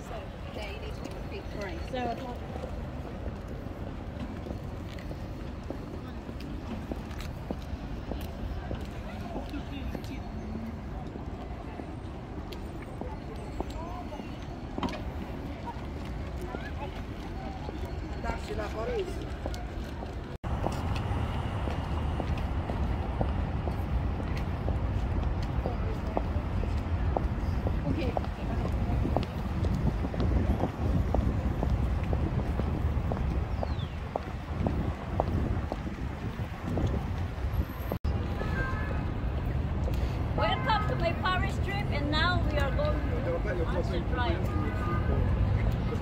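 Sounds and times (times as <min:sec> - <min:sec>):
low rumble of city traffic: 0:00.0 - 0:46.0
boot heels clicking on pavement: 0:19.2 - 0:37.8.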